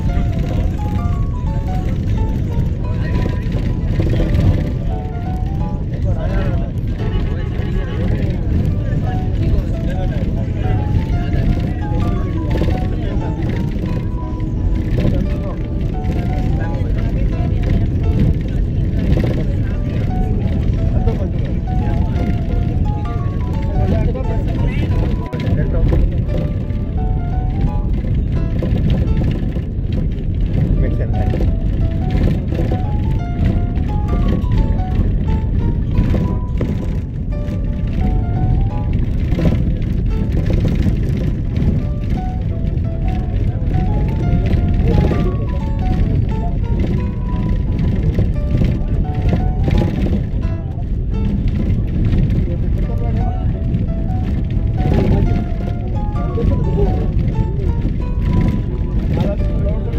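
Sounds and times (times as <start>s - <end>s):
car driving rumble: 0.0s - 59.9s
song with stepping melody: 0.0s - 59.9s.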